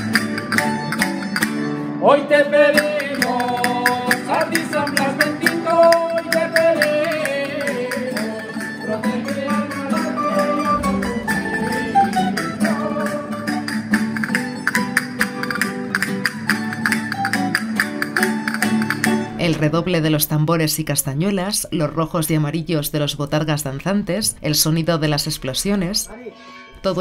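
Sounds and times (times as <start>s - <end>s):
lute strumming: 0.0s - 22.0s
acoustic guitar strumming: 0.0s - 27.0s
man singing: 2.0s - 13.7s
castanets clicking: 3.0s - 8.2s, 14.0s - 19.3s.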